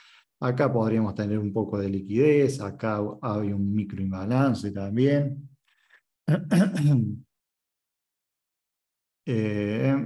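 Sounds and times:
man clearing his throat: 6.3 - 7.1.

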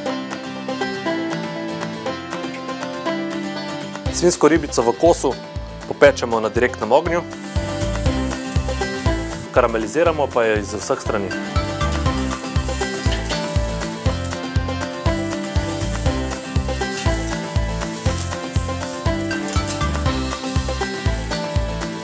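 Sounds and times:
background music with bass beat: 7.1 - 22.0
meat sizzling on a grill: 7.3 - 22.0.

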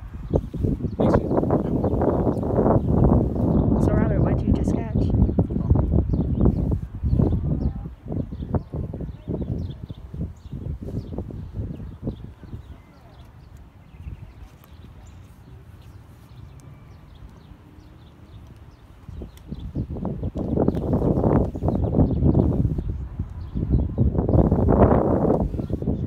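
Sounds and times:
low rumbling microphone noise: 0.0 - 16.2, 19.0 - 26.0
small birds chirping: 0.0 - 26.0.

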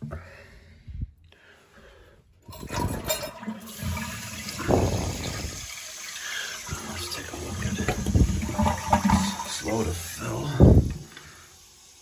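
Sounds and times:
toilet flushing: 2.4 - 12.0.

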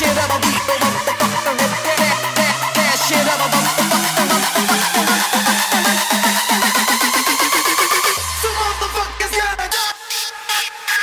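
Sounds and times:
rapid repeated hits: 0.0 - 9.8
rising synth sweep: 0.0 - 10.1.

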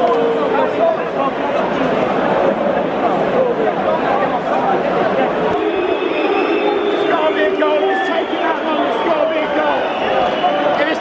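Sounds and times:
stadium crowd babble: 0.0 - 11.0.

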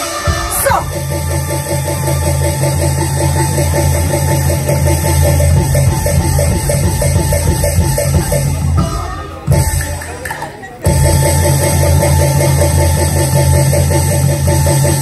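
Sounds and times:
steady bass line: 0.0 - 10.1, 10.9 - 15.0
drum kit: 0.0 - 15.0
fast repeated instrumental figure: 0.0 - 15.0.

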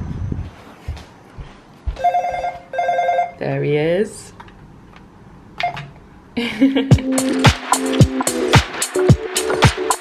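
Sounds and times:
intercom electronic ringing: 2.0 - 3.4.

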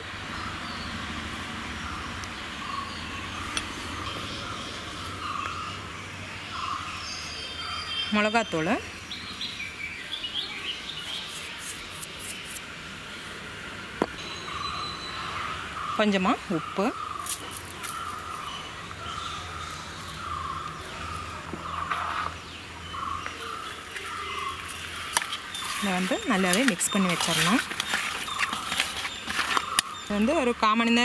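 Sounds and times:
birds chirping: 0.0 - 31.0
outdoor ambient noise: 0.0 - 31.0.

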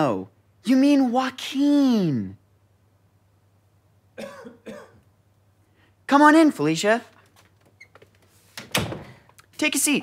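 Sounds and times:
person clearing throat: 4.2 - 5.0.

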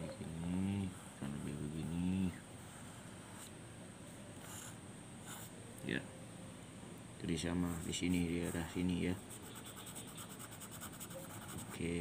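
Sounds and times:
pencil scribbling on paper: 4.4 - 5.5, 7.7 - 11.9.

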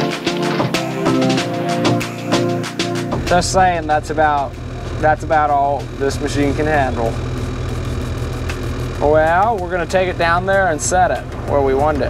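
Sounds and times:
excavator diesel engine under load: 3.2 - 12.0.

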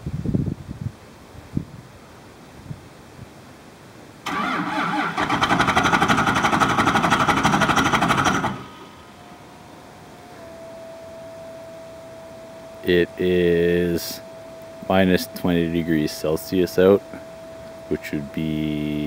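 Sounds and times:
faint steady whine: 0.0 - 19.0
diesel engine starter cranking: 4.2 - 9.4.

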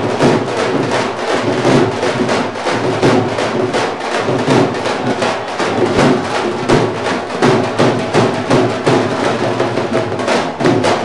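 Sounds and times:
dhol drums ensemble: 0.0 - 11.0.

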